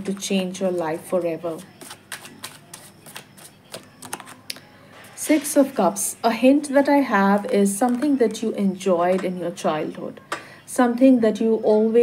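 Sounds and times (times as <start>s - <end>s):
cards shuffling: 1.8s - 4.5s.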